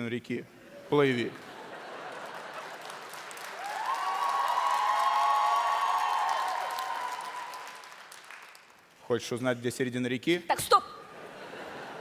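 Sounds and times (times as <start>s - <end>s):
audience applauding: 1.5s - 8.9s.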